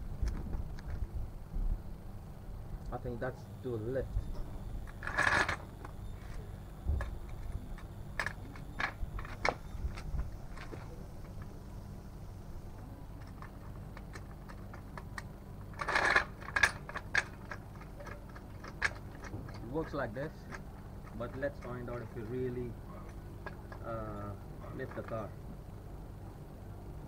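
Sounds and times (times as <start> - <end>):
short scraping rattle: 4.2 - 11.6, 13.2 - 24.0
metal clicks and knocks: 4.4 - 11.5, 13.2 - 22.5.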